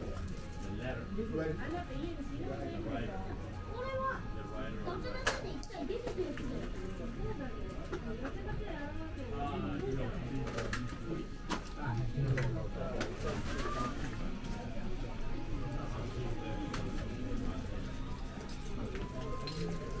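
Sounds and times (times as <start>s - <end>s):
murmur of voices: 0.0s - 20.0s.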